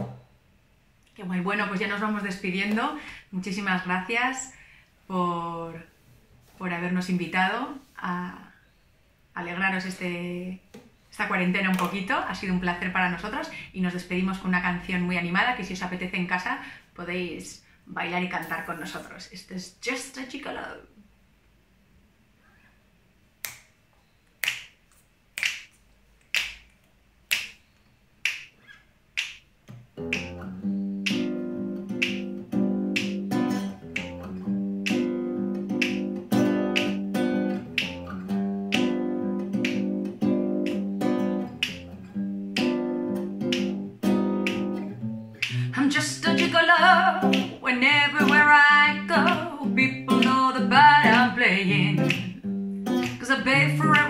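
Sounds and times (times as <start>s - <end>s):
finger snaps: 23.4s - 47.6s, 48.2s - 48.5s, 49.1s - 54.0s
acoustic guitar strumming chords: 30.0s - 54.0s
woman singing: 45.5s - 52.4s, 53.1s - 54.0s.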